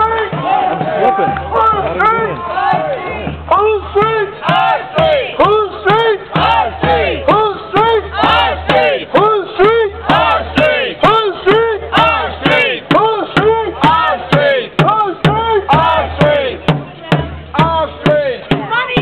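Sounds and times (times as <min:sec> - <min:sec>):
crowd chanting slogan: 0:00.0 - 0:19.0.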